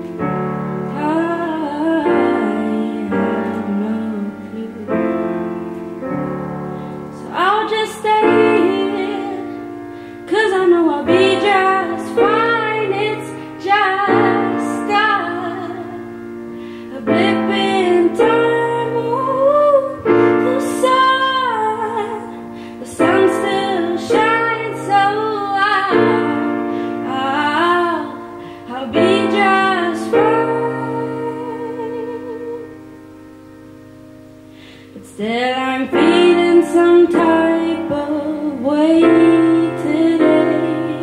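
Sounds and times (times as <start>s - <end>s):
woman singing: 0.0s - 33.0s, 34.9s - 41.0s
grand piano chords: 0.0s - 41.0s.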